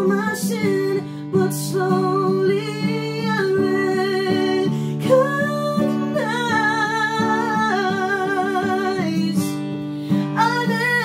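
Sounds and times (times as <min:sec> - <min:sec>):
acoustic guitar strumming: 0:00.0 - 0:11.0
woman singing: 0:00.0 - 0:11.0.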